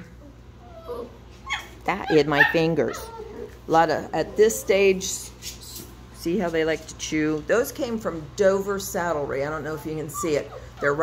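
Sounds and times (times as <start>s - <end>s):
steady low hum: 0.0s - 11.0s
puppies whimpering: 0.1s - 5.1s, 9.4s - 11.0s.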